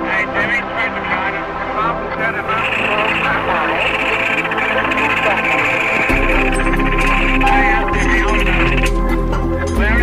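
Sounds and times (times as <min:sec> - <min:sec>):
indistinct voices: 0:00.0 - 0:10.0.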